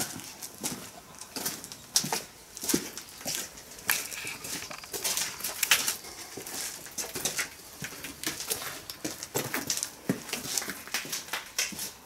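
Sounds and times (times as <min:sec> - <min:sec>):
footsteps crunching over debris: 0:00.0 - 0:12.0.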